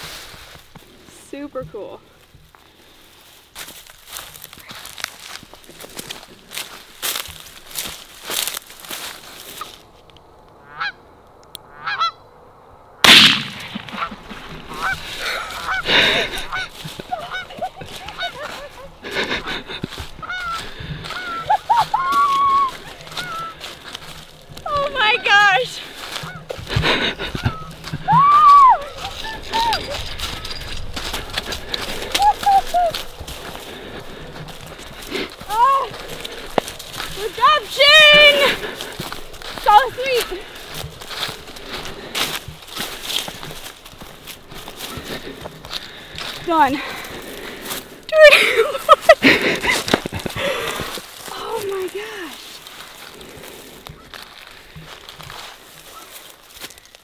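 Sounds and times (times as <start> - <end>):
footsteps crunching through stubble: 0.0 - 11.0, 13.0 - 57.0
geese honking: 10.6 - 12.3, 13.9 - 42.8
loud bang: 13.0 - 14.2.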